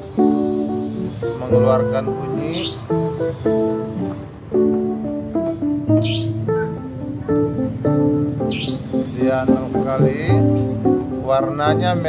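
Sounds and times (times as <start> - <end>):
acoustic guitar music: 0.0 - 12.0
bird giving short high calls: 6.0 - 6.8, 8.5 - 9.3.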